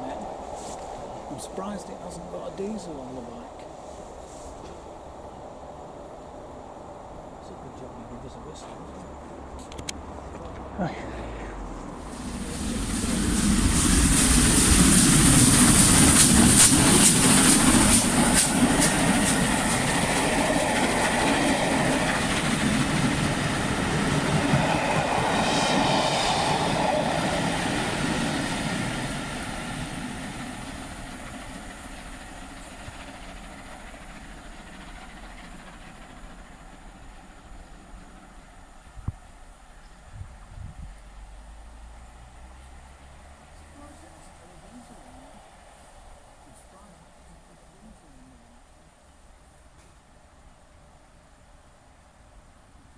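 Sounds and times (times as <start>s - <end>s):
steam train passing: 0.0s - 52.9s.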